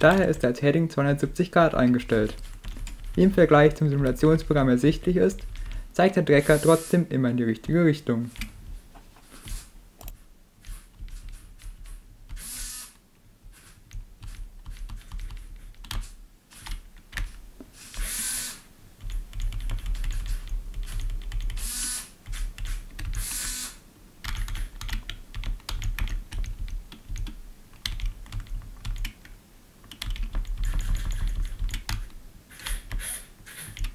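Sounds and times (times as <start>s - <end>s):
keyboard keys tapping: 0.0s - 0.6s, 1.6s - 5.8s, 13.9s - 16.1s, 19.0s - 21.6s, 24.2s - 32.2s
servo motors whirring: 6.4s - 7.0s, 12.4s - 13.8s, 17.8s - 18.6s, 23.2s - 23.8s.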